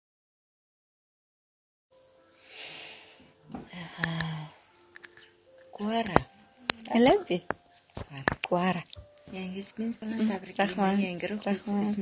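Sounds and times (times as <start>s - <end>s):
breathy exhale: 2.4s - 4.6s.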